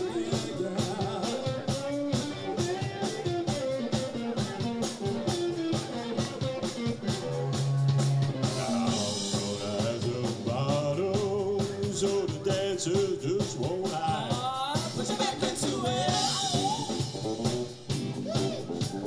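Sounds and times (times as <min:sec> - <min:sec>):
man singing: 0:00.0 - 0:03.3, 0:08.4 - 0:17.0
electric bass: 0:00.0 - 0:12.4, 0:15.8 - 0:19.0
drums: 0:00.0 - 0:19.0
woman singing: 0:14.1 - 0:17.0.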